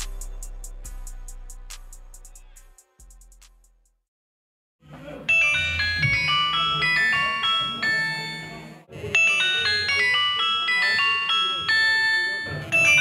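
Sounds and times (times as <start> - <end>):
mobile phone ringtone: 5.2 - 13.0.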